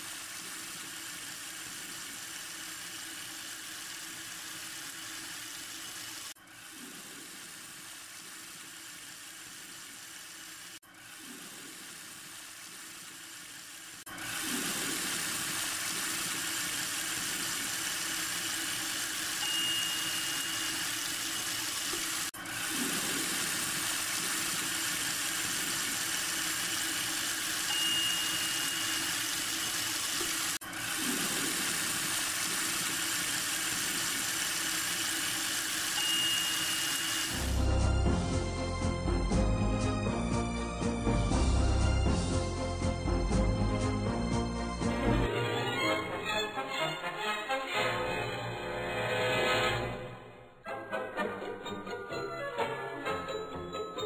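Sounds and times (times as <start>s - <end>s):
water rushing in a sink: 0.0s - 37.5s.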